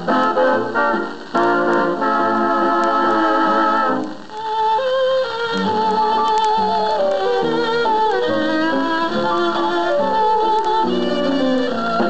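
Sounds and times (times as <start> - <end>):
dance band foxtrot on record: 0.0 - 12.0.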